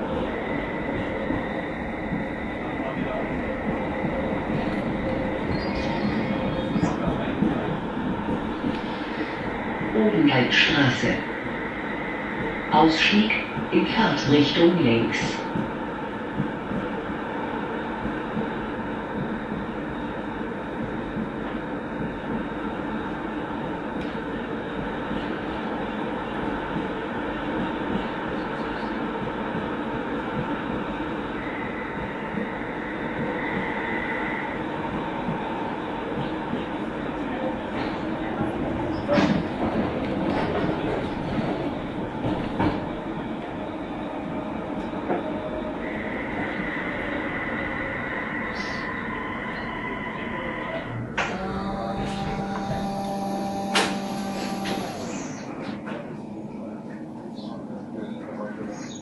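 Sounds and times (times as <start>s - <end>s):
tram wheels rumbling on rail: 0.0s - 59.0s
high steady whine: 51.2s - 55.9s.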